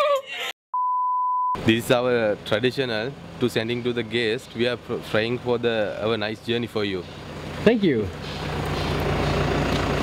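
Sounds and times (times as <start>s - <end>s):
van engine running: 1.6s - 10.0s.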